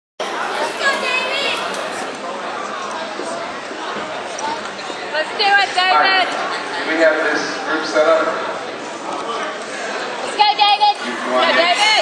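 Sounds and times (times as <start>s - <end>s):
crowd chatter: 0.2s - 12.0s.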